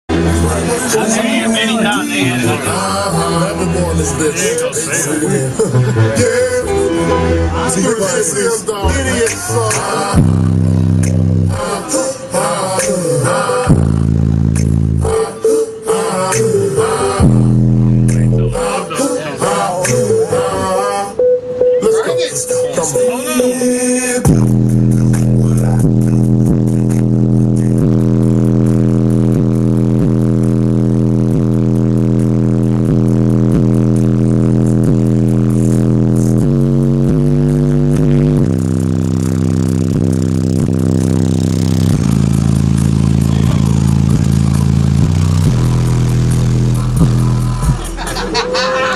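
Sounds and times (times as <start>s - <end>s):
bass-heavy music from subwoofers: 0.0s - 48.9s.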